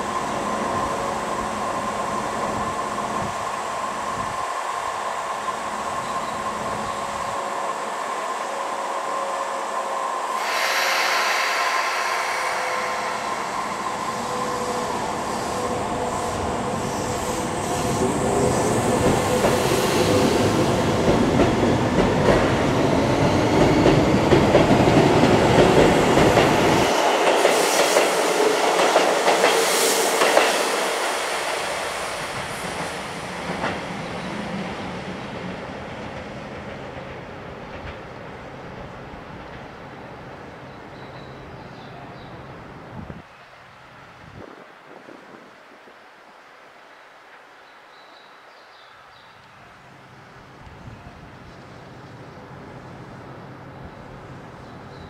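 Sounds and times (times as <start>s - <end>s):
train electrical hum: 0.0s - 43.2s.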